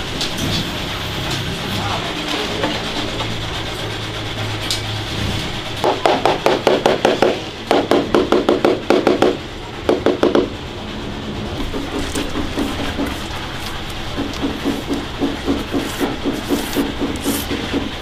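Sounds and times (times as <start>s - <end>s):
steady background hum: 0.0s - 18.0s
rapid tapping on ceramic tile: 14.2s - 17.9s.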